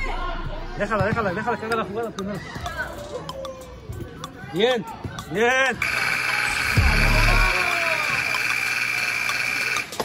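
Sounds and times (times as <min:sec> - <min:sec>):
high-pitched scoreboard buzzer: 0:05.8 - 0:10.0.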